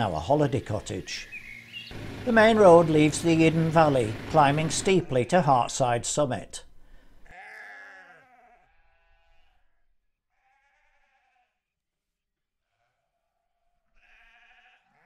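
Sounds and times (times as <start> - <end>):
sheep bleating: 3.7 - 5.6, 7.2 - 11.6, 12.6 - 15.0.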